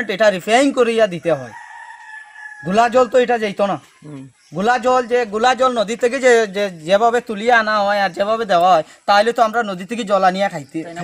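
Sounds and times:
man speaking: 0.0 - 1.5, 2.6 - 11.0
rooster crowing: 1.4 - 4.1.

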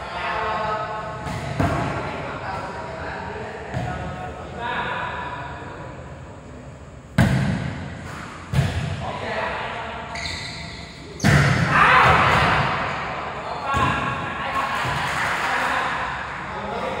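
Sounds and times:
volleyball smacks echoing: 1.2 - 2.6, 7.1 - 9.0, 11.2 - 13.0
players shouting: 11.6 - 13.0.

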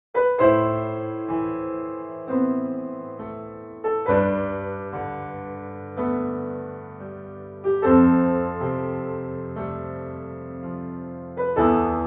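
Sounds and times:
slow piano chords: 0.2 - 12.0.

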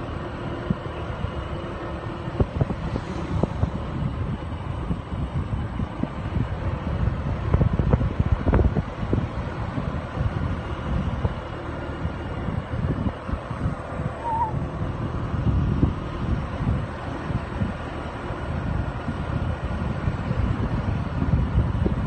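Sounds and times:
scooter engine hum: 0.0 - 22.0
wind buffeting microphone: 0.0 - 22.0
short high chirp: 14.2 - 14.5.

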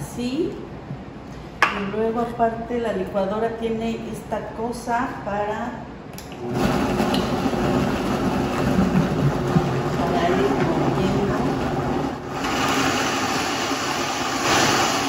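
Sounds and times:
blender motor grinding: 6.4 - 15.0.

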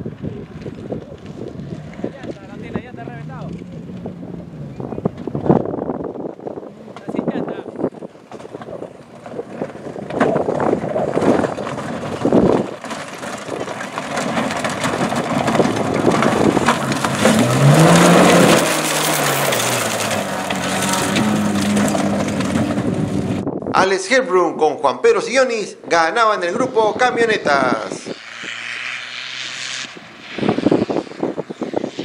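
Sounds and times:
tyres crunching on gravel: 0.0 - 23.4
engine revving: 0.0 - 23.5, 26.4 - 32.0.

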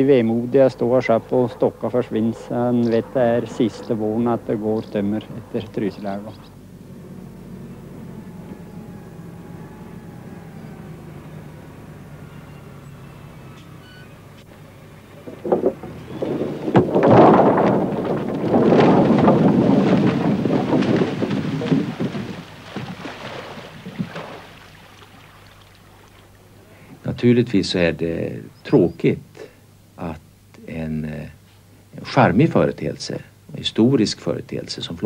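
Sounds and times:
loader engine humming: 0.0 - 27.3
logs tumbling down gravel: 15.0 - 26.4.

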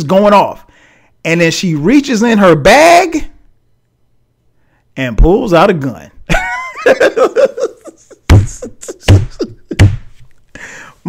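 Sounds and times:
man laughing: 6.3 - 10.2
heavy thumps: 8.3 - 10.2
breath in: 10.5 - 11.0.

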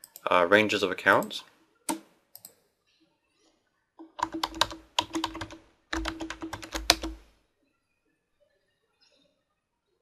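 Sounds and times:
typing on keyboard: 4.0 - 7.2.

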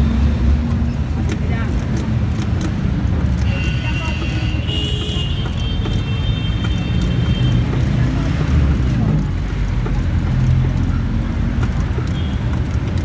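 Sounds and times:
vehicle engine rumbling: 0.0 - 13.0.

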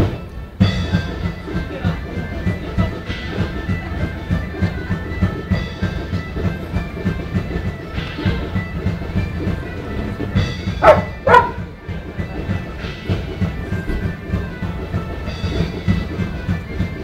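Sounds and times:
steady drumbeat: 0.0 - 17.0.

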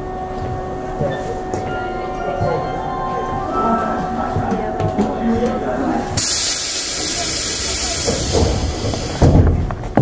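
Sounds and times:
loud hiss of air: 6.2 - 9.3.

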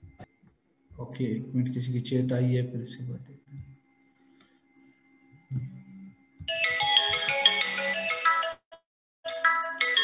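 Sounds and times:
mobile phone ringtone: 6.5 - 8.6.

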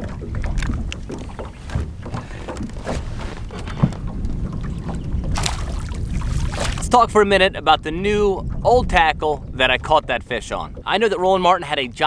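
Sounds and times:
small waves lapping at boat hull: 0.0 - 12.0
wind rumbling on microphone: 0.0 - 12.0
small splashes in water: 5.3 - 6.8.

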